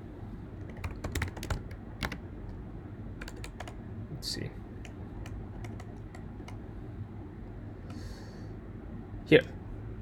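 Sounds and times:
computer keyboard typing: 0:00.6 - 0:02.2, 0:03.2 - 0:03.8, 0:04.8 - 0:06.6.

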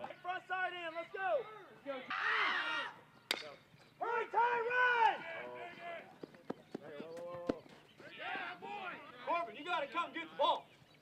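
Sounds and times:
baseball bat hitting ball: 0:03.3 - 0:03.6.

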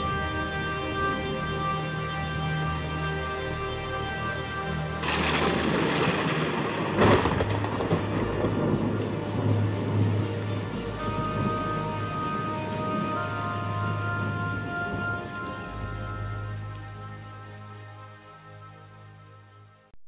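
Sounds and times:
heavy rain hiss: 0:00.0 - 0:19.8
soft background music: 0:00.0 - 0:19.9
thunderclaps: 0:05.0 - 0:16.3.

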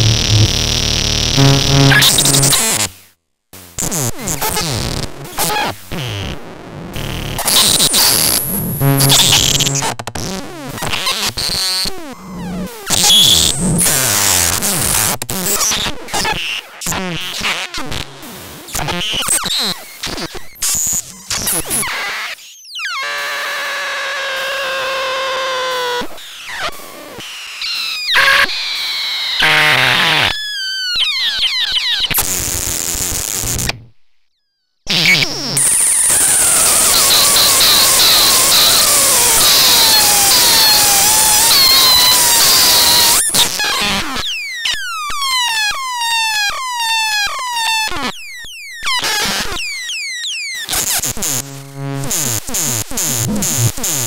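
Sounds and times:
noisy metallic synthesizer tones: 0:00.0 - 0:02.6, 0:08.8 - 0:09.8
falling synthesizer pitch sweeps: 0:00.0 - 0:02.7, 0:08.8 - 0:09.8.

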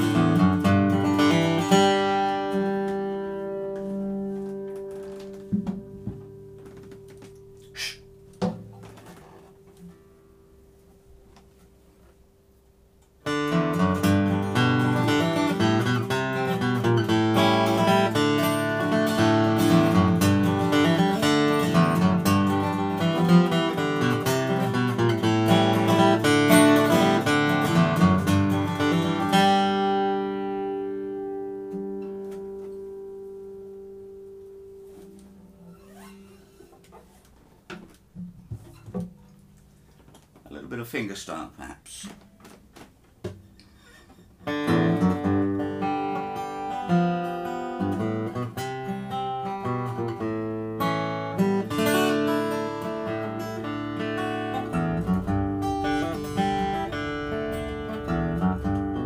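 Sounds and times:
flat-picked acoustic guitar: 0:00.0 - 0:59.0
knocks from handling guitar: 0:02.8 - 0:07.6, 0:08.3 - 0:09.9, 0:36.6 - 0:39.3, 0:42.1 - 0:44.2.

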